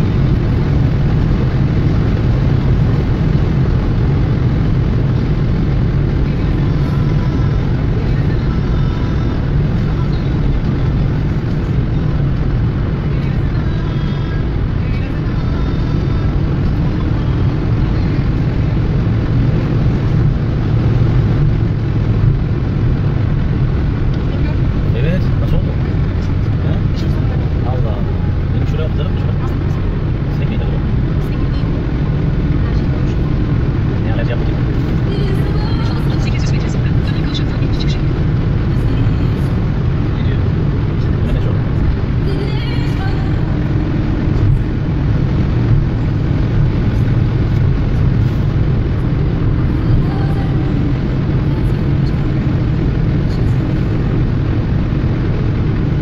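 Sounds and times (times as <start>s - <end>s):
car road and engine noise: 0.0s - 56.0s.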